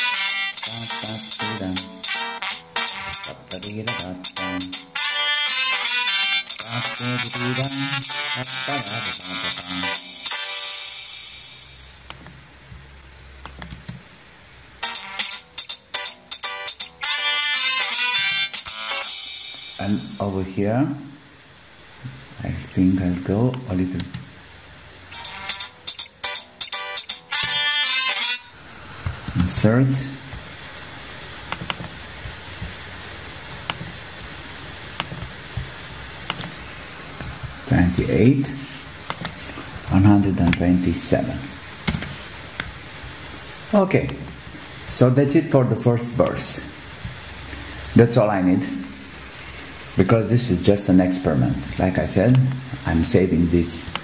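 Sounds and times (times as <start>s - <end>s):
midi music playing: 0.0s - 11.6s, 14.8s - 20.2s, 25.1s - 30.4s
room hiss and hum: 0.0s - 54.0s
computer mouse clicks: 13.4s - 14.0s, 31.5s - 32.8s, 35.0s - 35.7s, 36.3s - 36.6s, 39.1s - 39.4s.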